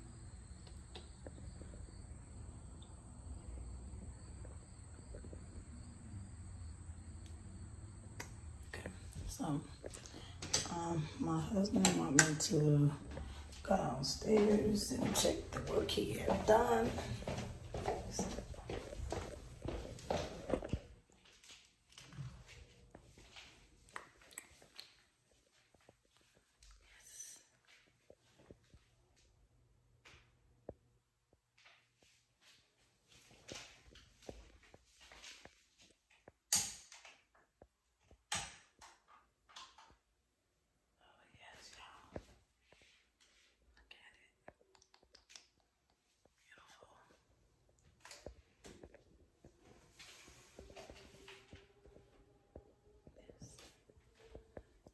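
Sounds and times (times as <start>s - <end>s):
footsteps going down stairs: 11.8s - 23.5s
person whispering: 26.8s - 27.6s, 41.0s - 42.3s, 43.8s - 45.2s, 46.4s - 47.3s.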